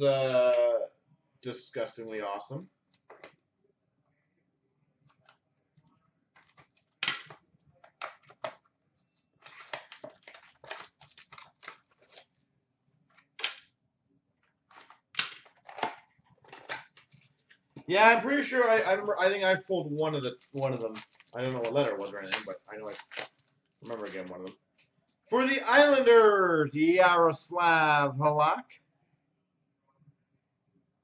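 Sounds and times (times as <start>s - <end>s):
card pack wrappers crinkling and tearing: 6.3s - 8.5s, 9.4s - 12.4s, 14.7s - 17.6s, 19.2s - 24.5s.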